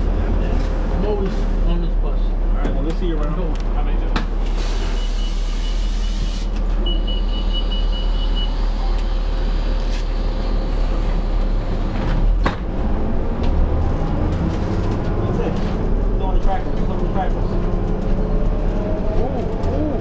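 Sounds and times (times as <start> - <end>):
bus engine idling: 0.0 - 20.0.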